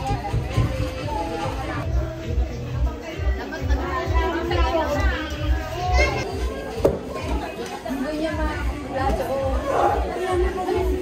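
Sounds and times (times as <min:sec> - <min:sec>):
children's voices: 0:00.0 - 0:11.0.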